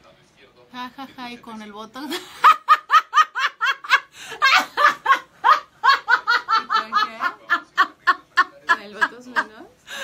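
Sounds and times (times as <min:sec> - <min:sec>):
hearty laughter: 0:02.1 - 0:09.6.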